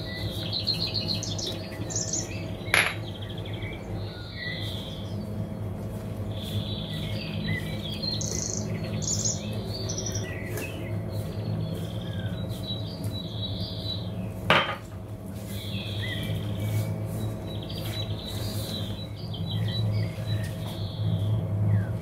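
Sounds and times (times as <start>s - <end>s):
birds chirping: 0.0s - 22.0s
steady low hum: 0.0s - 22.0s.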